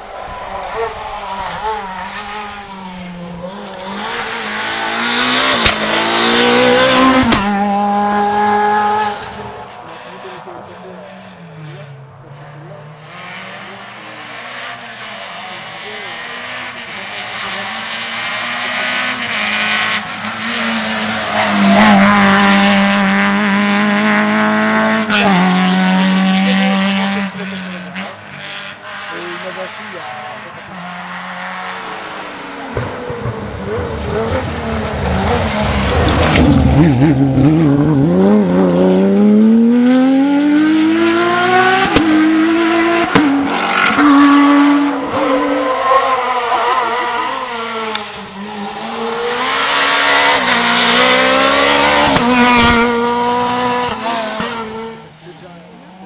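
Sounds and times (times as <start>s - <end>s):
rally car engines revving: 0.0s - 56.0s.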